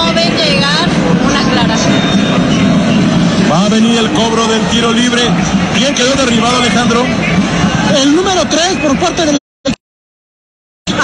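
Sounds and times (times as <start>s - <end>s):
stadium crowd din: 0.0s - 9.4s.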